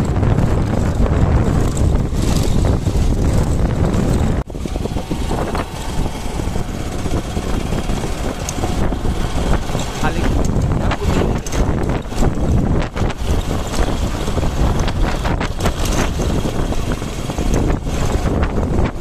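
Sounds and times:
vehicle rumbling on dirt road: 0.0 - 19.0
wind buffeting microphone: 0.0 - 19.0.

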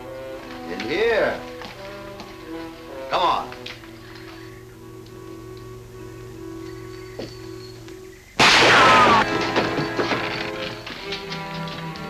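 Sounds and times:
tense background music: 0.0 - 12.0
rifle shot with ricochet whine: 8.4 - 9.4.

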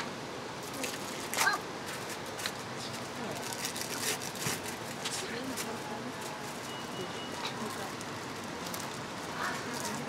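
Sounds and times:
indistinct background talk: 4.8 - 10.0.

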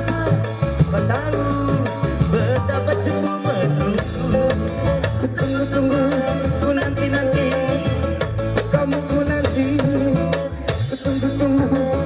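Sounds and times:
live band music over pa: 0.0 - 12.0
man singing: 0.0 - 12.0.

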